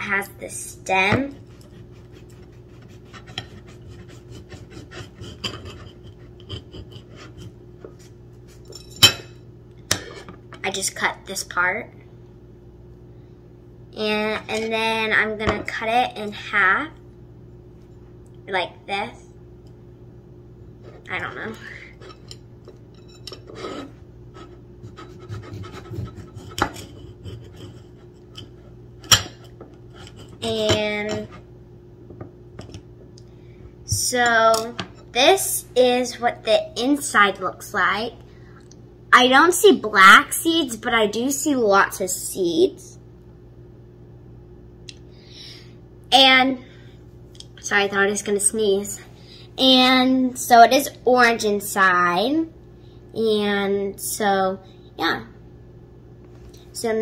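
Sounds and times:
knife scraping on a plate: 1.3 - 9.3, 9.9 - 10.4, 21.7 - 31.5
knife rasping through fruit skin: 1.4 - 7.5.

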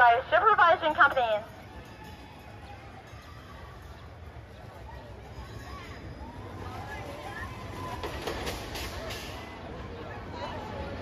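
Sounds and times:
roller coaster train rumbling: 4.7 - 11.0
roller coaster clattering: 5.4 - 9.8.

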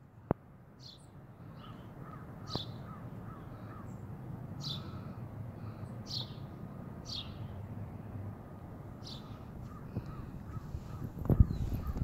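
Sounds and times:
soft bird chirps: 0.8 - 5.0, 5.7 - 7.6, 9.0 - 12.0.

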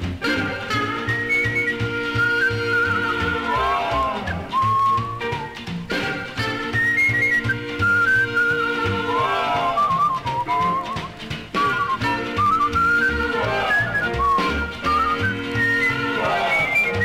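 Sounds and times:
walking bass: 0.0 - 17.0
whistled melody: 0.0 - 17.0.

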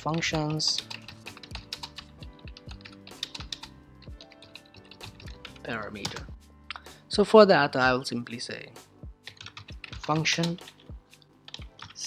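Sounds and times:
keyboard typing: 0.0 - 6.9, 9.2 - 12.0
quiet background music: 0.0 - 12.0.

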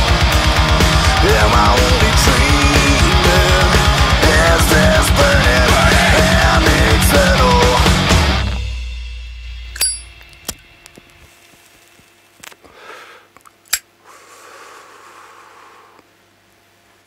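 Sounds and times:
low bass note ringing: 8.4 - 10.9
short metallic ding: 9.8 - 10.2
sharp clicks: 13.4 - 13.9.

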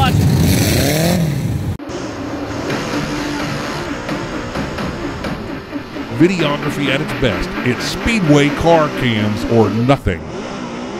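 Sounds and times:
race car engine accelerating past: 0.0 - 10.9
wavering drone: 1.8 - 10.9.

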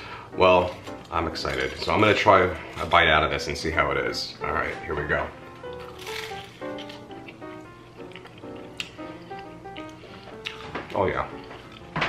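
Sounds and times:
background music: 0.0 - 12.0
chewing crunches: 5.6 - 11.9
bite into crisp fried fish: 5.7 - 11.9.

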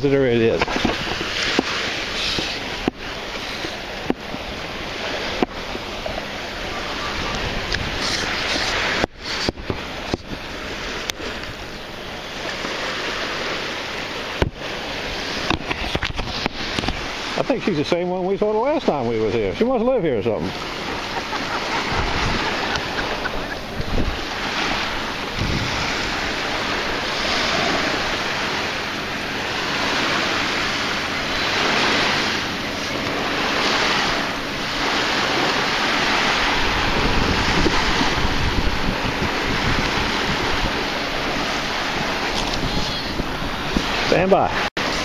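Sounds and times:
surf breaking on beach: 0.0 - 45.0
wind buffeting microphone: 0.0 - 45.0.

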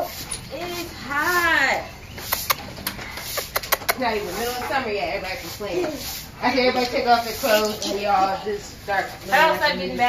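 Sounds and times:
dog claws clicking on concrete: 2.2 - 4.0.

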